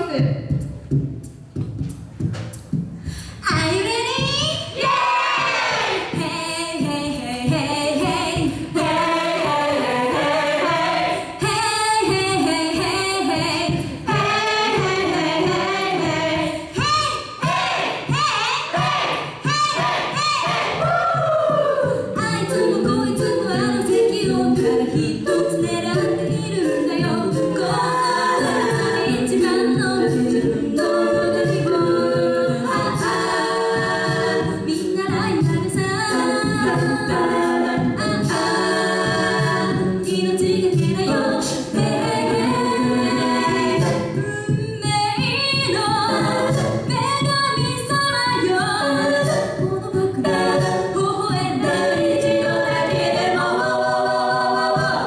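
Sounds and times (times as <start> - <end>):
vocal beat: 0.0 - 55.0
women singing in harmony: 3.4 - 55.0.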